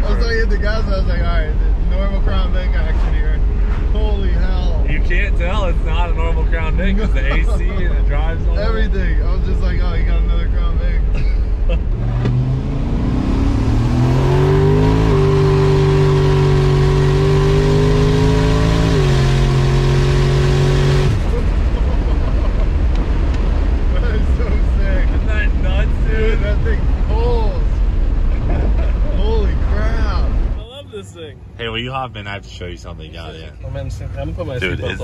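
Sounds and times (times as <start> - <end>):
road noise: 0.0 - 35.0
people laughing: 6.8 - 8.2, 11.0 - 11.9, 21.2 - 22.9, 28.3 - 29.2
car engine revving hard: 11.8 - 27.5.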